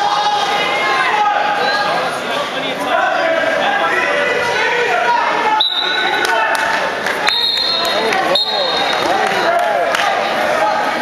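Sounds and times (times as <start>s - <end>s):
crowd voices and shouting: 0.0s - 11.0s
referee's whistle blast: 5.6s - 6.2s, 7.3s - 9.1s.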